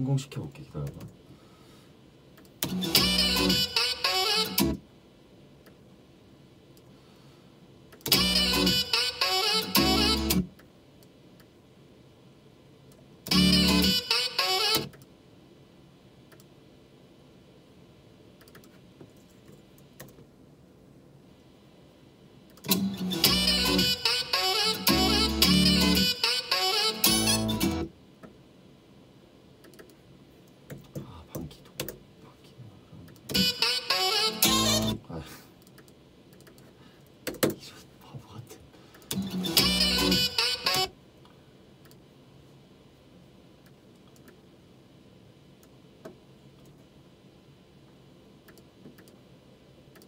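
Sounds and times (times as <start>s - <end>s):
keyboard and mouse clicks: 2.4s - 2.8s, 18.4s - 20.2s, 22.5s - 22.8s, 29.6s - 32.0s, 33.0s - 33.5s, 35.6s - 37.6s, 43.6s - 44.4s, 48.4s - 49.2s
loud music: 23.0s - 27.8s.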